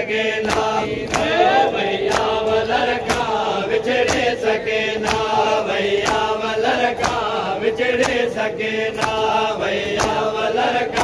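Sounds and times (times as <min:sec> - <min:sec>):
men chanting a lament: 0:00.0 - 0:11.0
rhythmic chest-beating strikes: 0:00.0 - 0:11.0.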